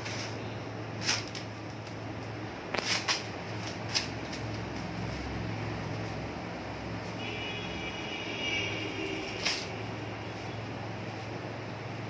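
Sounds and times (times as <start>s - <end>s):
air cooler fan drone: 0.0s - 12.0s.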